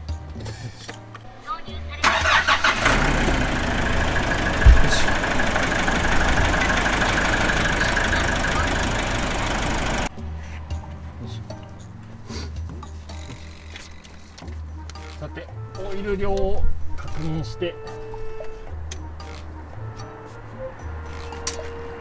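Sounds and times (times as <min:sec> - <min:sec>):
diesel engine starting and idling: 0:02.0 - 0:10.1.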